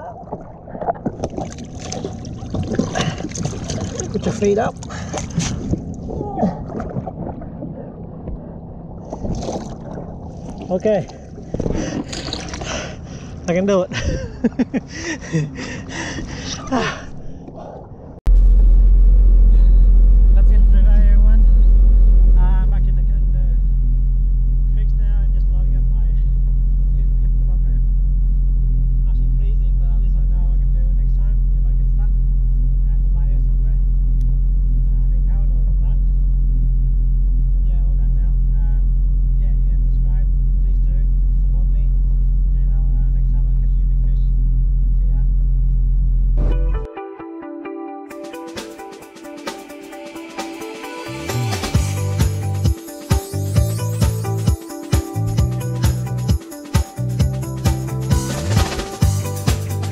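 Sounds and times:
jet ski engine running: 18.4 - 24.9.

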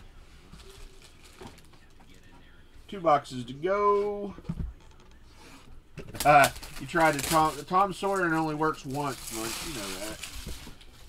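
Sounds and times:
trading cards rustling: 6.1 - 11.0.

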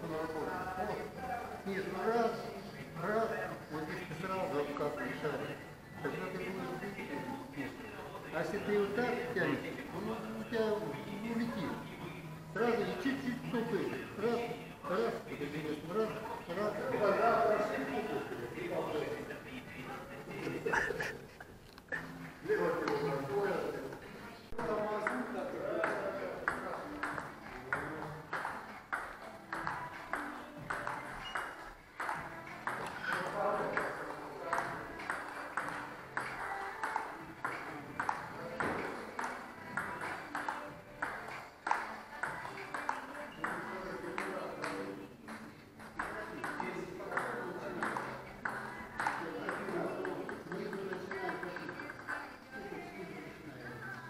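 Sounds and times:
table tennis ball clicking: 25.0 - 52.2.

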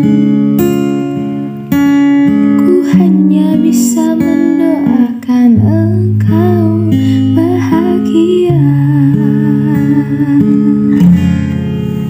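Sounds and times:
acoustic guitar picking chords: 0.0 - 12.0
woman's wordless vocal: 2.8 - 11.4.

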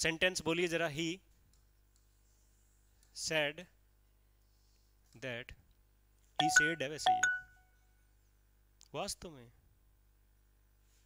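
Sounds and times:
person speaking: 6.4 - 7.4.

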